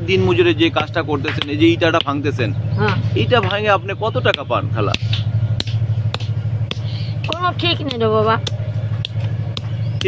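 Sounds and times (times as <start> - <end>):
steady low hum: 0.0 - 10.0
stone pounder knocking on stone: 0.7 - 2.2.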